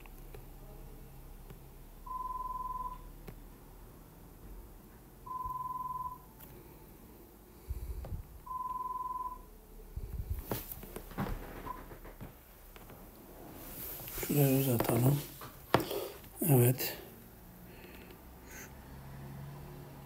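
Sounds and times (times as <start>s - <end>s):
electronic beep: 2.1s - 3.1s, 5.3s - 6.3s, 8.5s - 9.5s.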